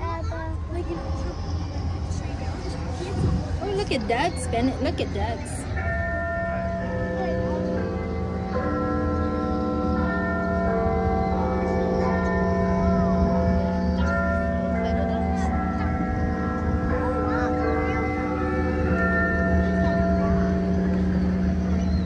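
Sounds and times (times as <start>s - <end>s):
clock bell chimes ringing: 3.7s - 22.0s.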